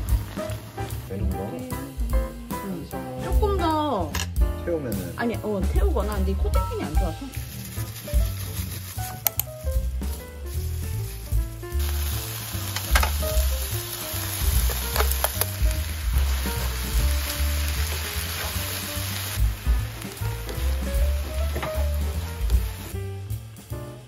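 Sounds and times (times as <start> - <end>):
meat sizzling in frying pan: 0.0 - 1.1, 6.8 - 23.7
background music: 0.0 - 24.0
utensils clicking against pan: 7.4 - 9.6, 12.7 - 13.4, 14.6 - 15.7.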